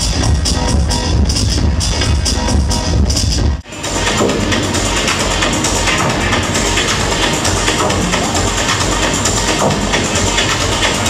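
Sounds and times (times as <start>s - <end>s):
dub techno through club speakers: 0.0s - 11.0s.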